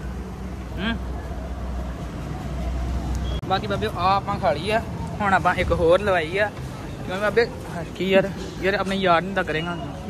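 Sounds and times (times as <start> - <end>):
vehicle rumble: 0.0 - 10.0
short vocal sound: 0.7 - 1.1.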